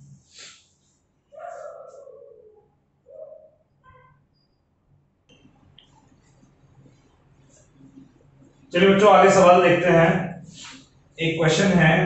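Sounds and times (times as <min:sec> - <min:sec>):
pigeon cooing: 0:01.4 - 0:03.6.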